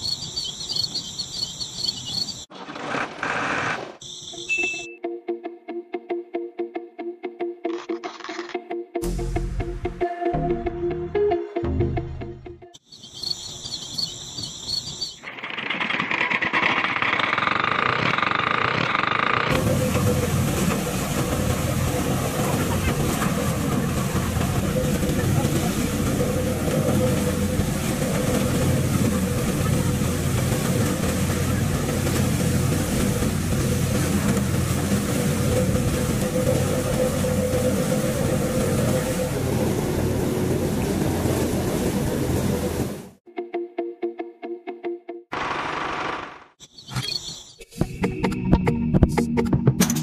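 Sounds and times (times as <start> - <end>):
thresher motor and spinning drum: 15.2 - 41.0.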